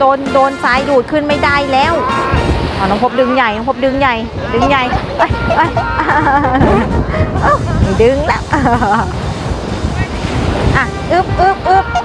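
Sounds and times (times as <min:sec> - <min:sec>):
small waves washing on beach: 0:00.0 - 0:12.0.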